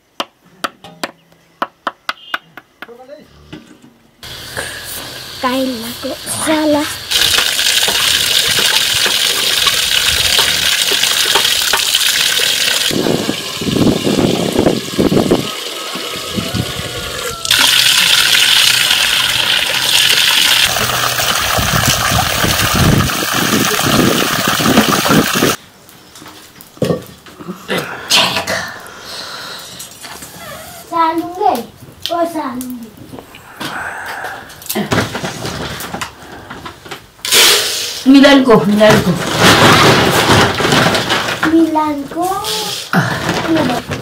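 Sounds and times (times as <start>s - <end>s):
water gushing and splashing: 6.5s - 25.6s.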